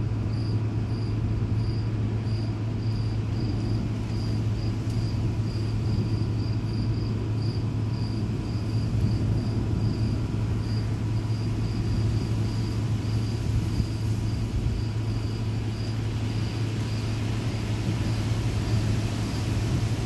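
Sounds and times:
crickets chirping: 0:00.0 - 0:20.0.

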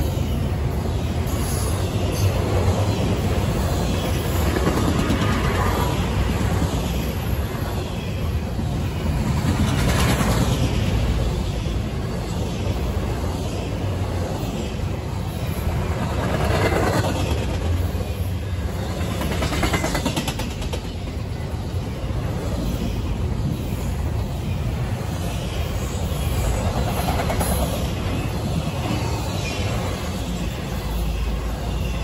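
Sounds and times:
train wheels rumbling on rails: 0:00.0 - 0:32.0
train wheels clicking: 0:01.3 - 0:07.1, 0:15.4 - 0:21.3, 0:26.0 - 0:30.0.

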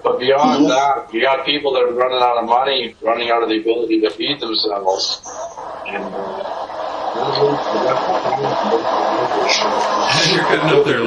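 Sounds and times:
garbled distorted man's voice: 0:00.0 - 0:06.5, 0:07.2 - 0:11.0.

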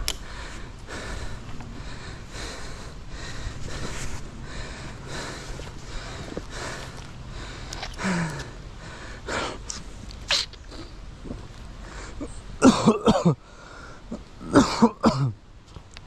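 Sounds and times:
person coughing: 0:12.6 - 0:13.4, 0:14.5 - 0:15.3.

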